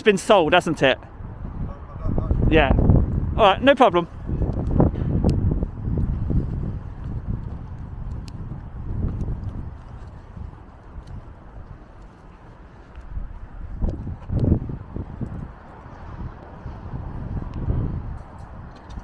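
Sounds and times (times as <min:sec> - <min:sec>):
wind buffeting microphone: 0:00.0 - 0:19.0
footsteps on tarmac: 0:03.8 - 0:19.0.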